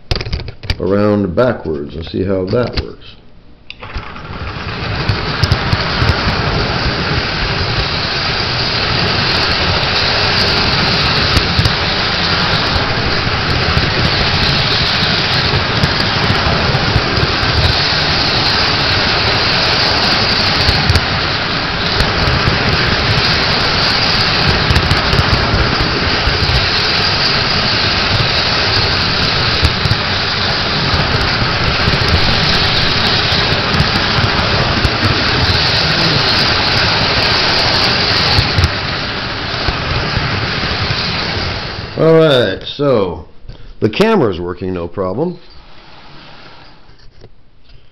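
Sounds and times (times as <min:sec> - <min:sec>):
model train wheels rolling on rail: 0:03.7 - 0:42.9.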